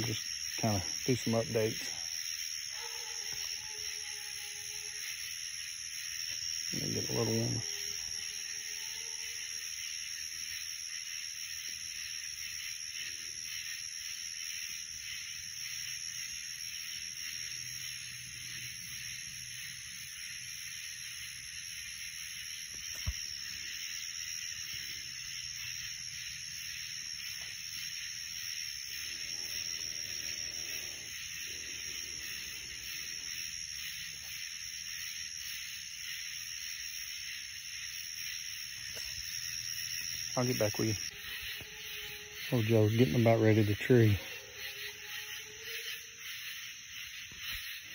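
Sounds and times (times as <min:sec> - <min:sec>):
night insects chorus: 0:00.0 - 0:47.9.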